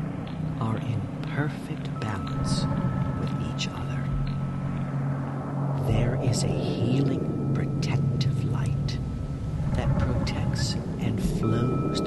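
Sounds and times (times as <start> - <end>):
low drone: 0.0 - 12.0
thin high tone: 0.0 - 12.0
person whispering: 0.6 - 4.2, 5.8 - 9.0, 9.8 - 12.0.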